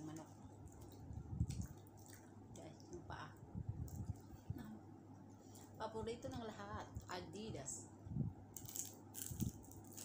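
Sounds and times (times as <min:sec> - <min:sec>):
biting and chewing food: 0:08.6 - 0:10.0.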